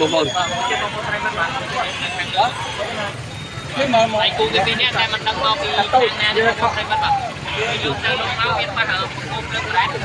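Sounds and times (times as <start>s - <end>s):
people talking over one another: 0.0s - 10.0s
road traffic rumble: 0.0s - 10.0s.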